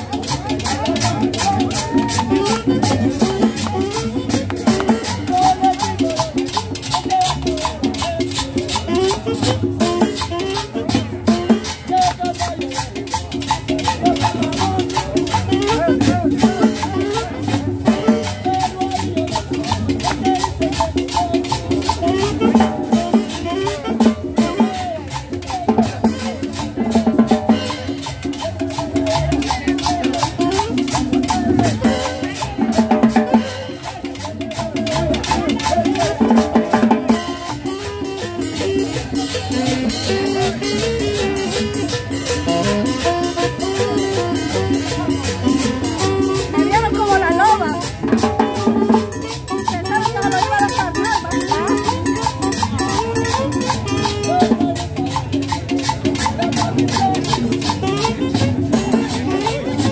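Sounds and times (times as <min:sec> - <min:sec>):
conga drums: 0:00.0 - 0:59.9
live band playing salsa music: 0:00.0 - 0:59.9.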